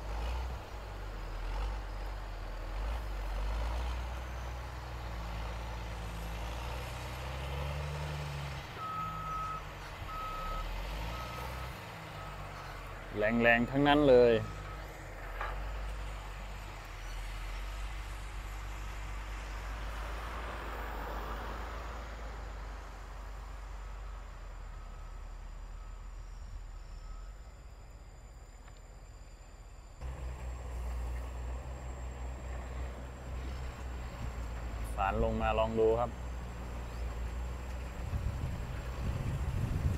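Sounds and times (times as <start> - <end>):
diesel engine rumbling: 0.0 - 39.9.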